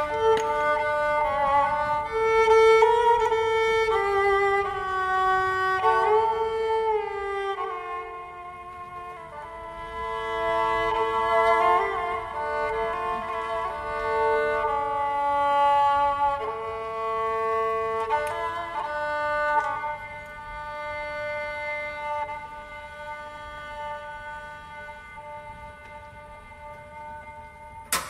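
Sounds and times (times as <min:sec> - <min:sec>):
slow bowed string melody: 0:00.0 - 0:28.0.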